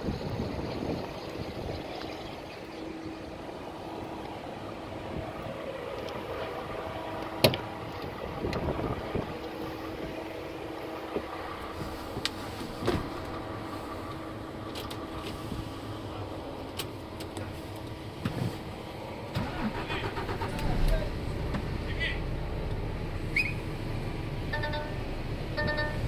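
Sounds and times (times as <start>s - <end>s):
low rumble: 0.0s - 25.6s
diesel engine idling: 0.0s - 26.0s.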